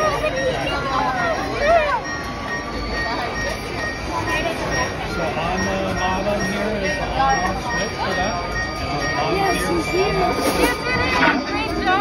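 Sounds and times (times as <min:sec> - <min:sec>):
faint high tones: 0:00.0 - 0:12.0
faint voices: 0:00.0 - 0:12.0.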